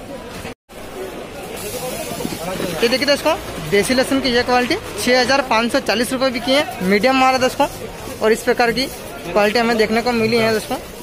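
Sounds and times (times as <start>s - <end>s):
garlic bulbs rustling: 1.5s - 11.0s.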